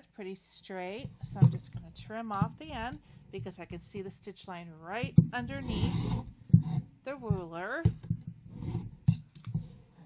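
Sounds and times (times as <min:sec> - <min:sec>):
rotary cutter scraping mat: 0:05.4 - 0:06.9.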